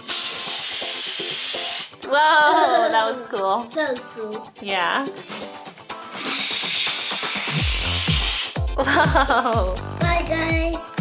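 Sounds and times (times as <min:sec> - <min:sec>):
gas hissing from balloon: 0:00.0 - 0:02.0, 0:05.6 - 0:08.7.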